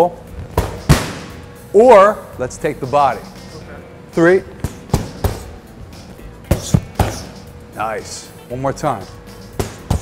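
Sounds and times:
soft background music: 0.0s - 10.0s
boxing gloves hitting focus mitts: 4.6s - 5.5s, 9.6s - 10.0s.

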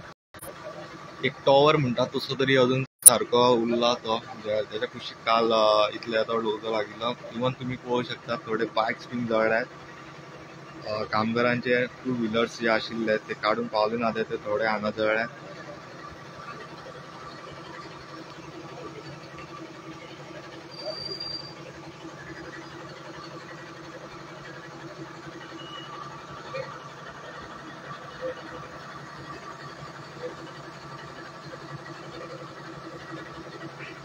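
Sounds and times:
engine drone: 0.0s - 34.0s.

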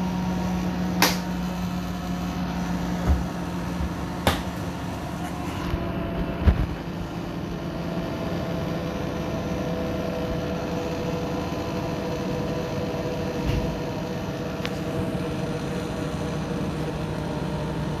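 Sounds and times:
washing machine drum spinning: 0.0s - 15.2s.

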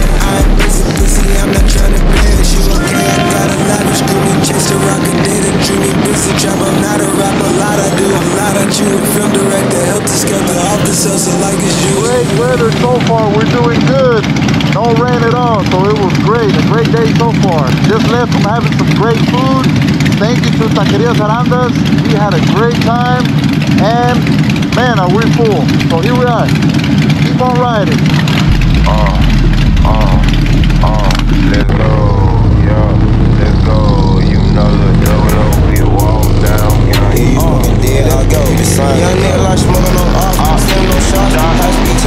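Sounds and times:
music: 0.0s - 12.4s, 35.0s - 42.0s
pitched wordless voice: 0.0s - 26.5s, 27.2s - 42.0s
motorcycle engine running: 0.0s - 42.0s.

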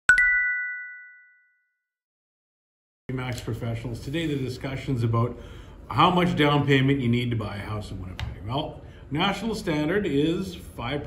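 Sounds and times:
two-note chime: 0.1s - 1.8s.

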